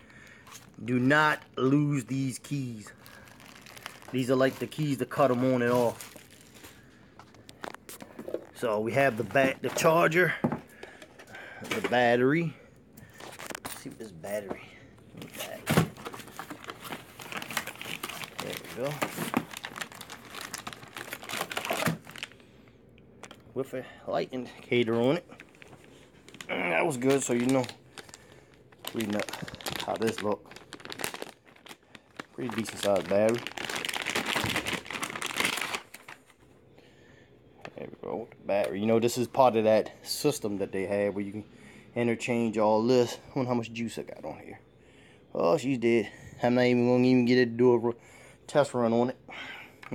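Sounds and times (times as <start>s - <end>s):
plastic wrapping crinkling: 0.0s - 10.3s, 13.0s - 14.5s, 15.1s - 22.5s, 24.6s - 36.4s.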